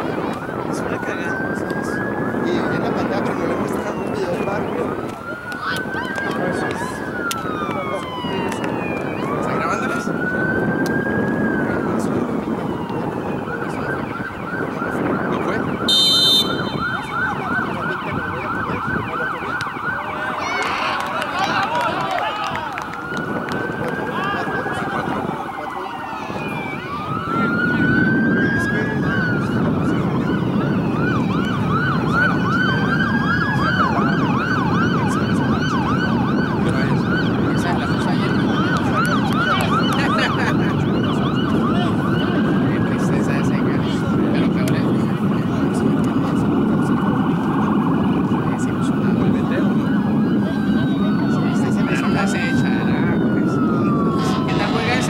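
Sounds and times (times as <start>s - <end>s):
emergency vehicle siren: 0.0s - 55.0s
sharp whistle blast: 15.9s - 17.0s.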